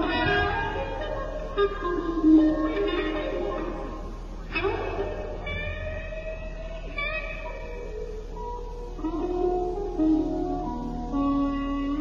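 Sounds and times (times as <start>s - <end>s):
electric guitar sustained note: 0.0s - 12.0s.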